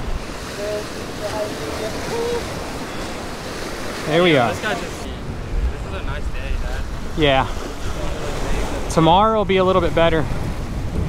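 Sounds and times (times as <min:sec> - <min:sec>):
waves washing against rocks: 0:00.0 - 0:11.0
wind buffeting microphone: 0:00.0 - 0:11.0.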